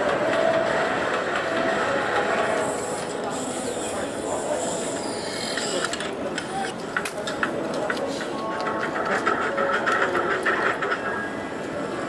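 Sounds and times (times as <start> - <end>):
rapid irregular clicks: 5.6 - 11.8.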